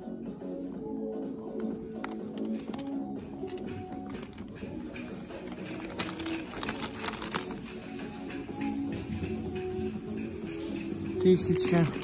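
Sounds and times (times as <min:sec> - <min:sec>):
background music: 0:00.0 - 0:12.0
plastic sleeves crinkling: 0:02.0 - 0:08.4, 0:11.2 - 0:12.0.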